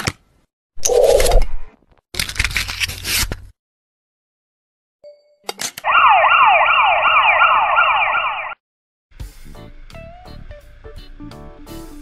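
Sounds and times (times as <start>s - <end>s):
electronic siren yelping: 5.8s - 8.6s.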